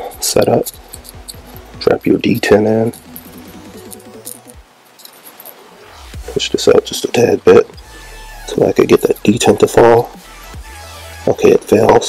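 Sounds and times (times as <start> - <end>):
small metal parts clicking: 0.0 - 5.7.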